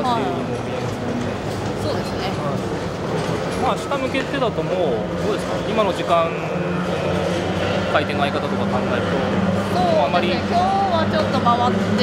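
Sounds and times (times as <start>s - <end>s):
conversational speech: 0.0s - 0.7s, 7.9s - 12.0s.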